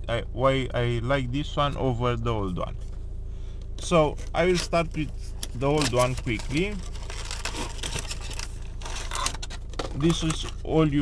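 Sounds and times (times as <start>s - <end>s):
cardboard and plastic rustling: 4.5s - 10.6s.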